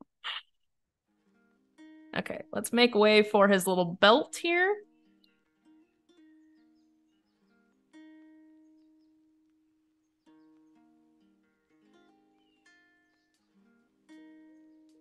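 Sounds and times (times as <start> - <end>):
faint plucked guitar music: 1.1 - 15.0.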